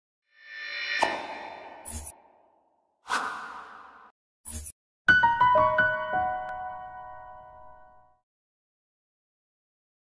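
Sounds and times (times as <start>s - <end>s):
whoosh sound effects: 0.4s - 2.5s, 3.1s - 4.7s.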